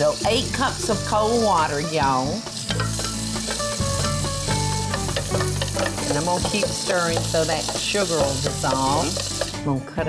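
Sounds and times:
water pouring and splashing: 0.0 - 9.6
soft background music: 0.0 - 10.0.

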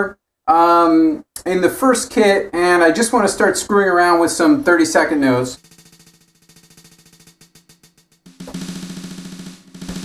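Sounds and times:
fast drum roll: 5.6 - 10.0.

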